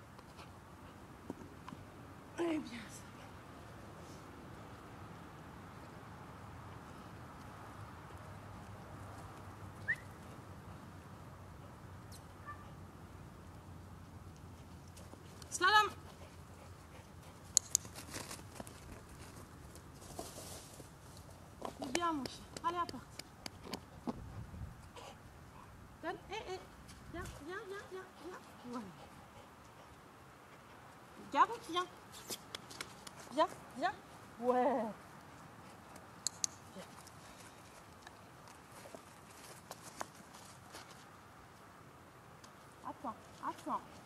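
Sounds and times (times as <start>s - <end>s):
dog-training clicker clicks: 36.2s - 36.6s.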